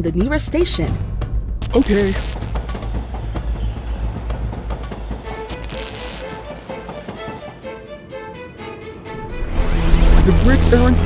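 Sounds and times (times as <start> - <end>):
background music: 0.0 - 11.0
train rumbling along track: 2.9 - 5.5.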